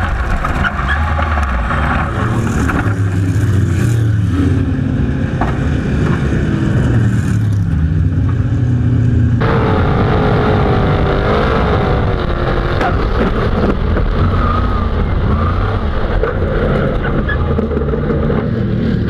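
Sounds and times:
high wavering engine whine: 0.0 - 19.0
racing car engine at speed: 0.0 - 19.0.

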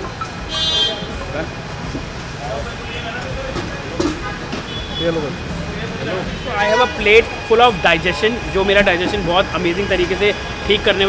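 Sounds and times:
street traffic noise: 0.0 - 11.0
vehicle horn beep: 0.4 - 1.2, 4.1 - 5.4.

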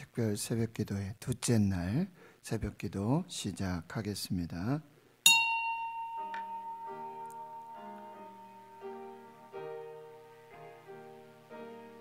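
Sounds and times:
soft piano music: 5.4 - 12.0.

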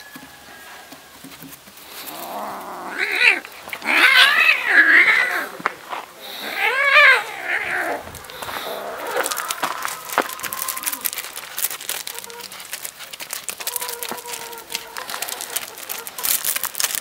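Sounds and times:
crunches on loose gravel: 0.7 - 17.0
cat meowing: 2.2 - 11.2.

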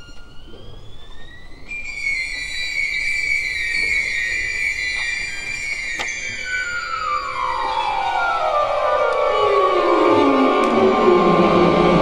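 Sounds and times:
violin sliding high notes: 0.0 - 12.0.

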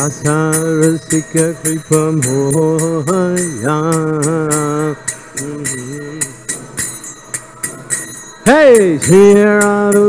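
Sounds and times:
man singing a devotional chant: 0.0 - 6.8, 8.5 - 10.0
small hand cymbals beating: 0.0 - 10.0.

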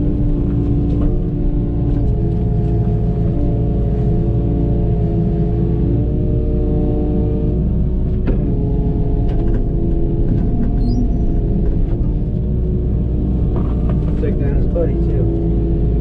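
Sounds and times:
excavator engine and hydraulics: 7.6 - 16.0.

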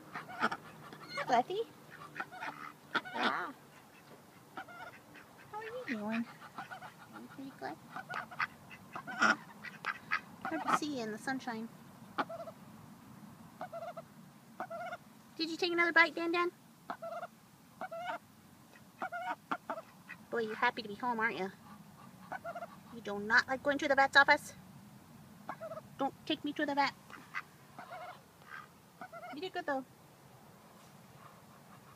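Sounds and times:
duck quacking softly: 0.1 - 11.0, 16.9 - 20.6, 21.4 - 23.0, 25.4 - 25.8, 27.1 - 29.6, 31.1 - 31.9.

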